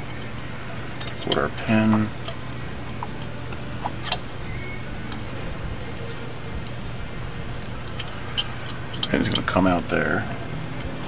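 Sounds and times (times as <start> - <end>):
steady low hum: 0.0 - 11.0
light metallic clicks and taps: 7.6 - 9.6.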